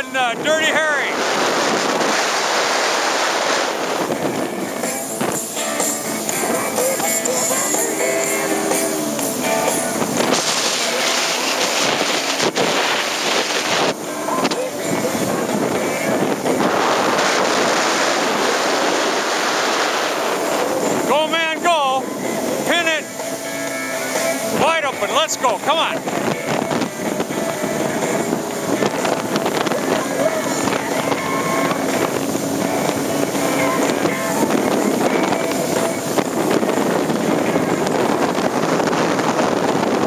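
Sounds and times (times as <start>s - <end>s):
rushing spray: 0.0s - 40.0s
watercraft engine: 0.0s - 40.0s
wind buffeting microphone: 0.0s - 40.0s.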